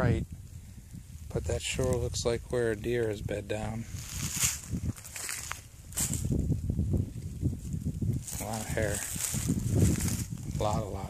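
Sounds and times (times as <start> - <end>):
footsteps crunching through dry leaves: 3.8 - 6.5, 7.7 - 10.8.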